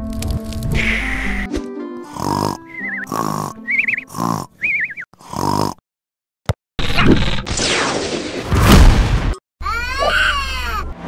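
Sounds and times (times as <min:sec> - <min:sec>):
cartoon snoring: 0:02.0 - 0:05.8.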